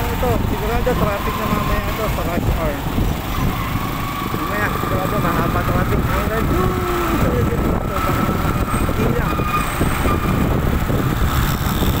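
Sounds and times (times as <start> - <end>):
motorcycle riding rumble: 0.0 - 12.0.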